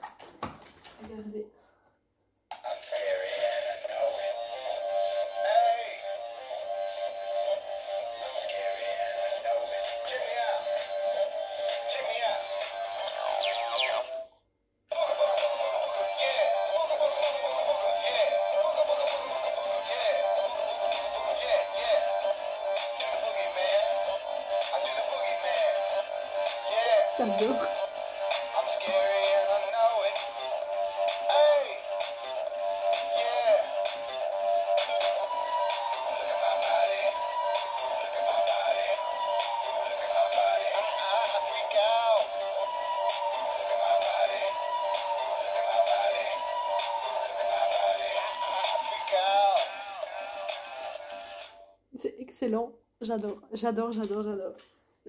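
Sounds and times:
toy playing tinny synthesized song: 2.7 - 14.3, 14.9 - 51.7.

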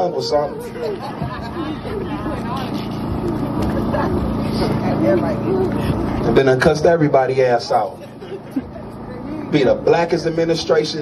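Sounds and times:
men talking: 0.0 - 3.0, 6.2 - 8.4, 9.2 - 11.0
low engine hum: 0.0 - 11.0.

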